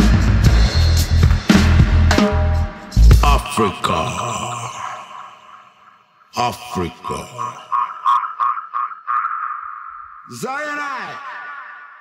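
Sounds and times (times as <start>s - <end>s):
echoing shouted vocal: 3.2s - 12.0s.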